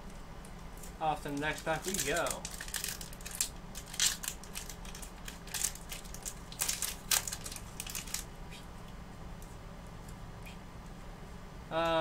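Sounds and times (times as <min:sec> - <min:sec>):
foil wrapper crinkling and tearing: 0:00.8 - 0:08.3.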